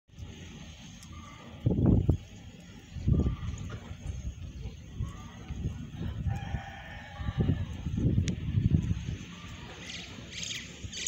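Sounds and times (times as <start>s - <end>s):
low rumbling noise: 0.1s - 10.9s
rooster crowing: 5.2s - 7.8s.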